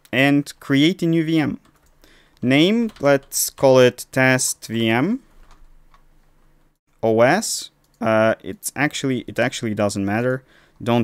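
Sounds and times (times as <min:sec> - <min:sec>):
person speaking: 0:00.0 - 0:01.8, 0:02.4 - 0:05.4, 0:07.0 - 0:11.0.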